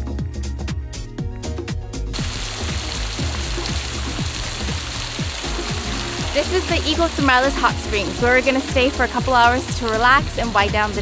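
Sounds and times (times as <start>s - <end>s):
background music with steady beat: 0.0s - 11.0s
water spout spraying into pool: 2.2s - 11.0s.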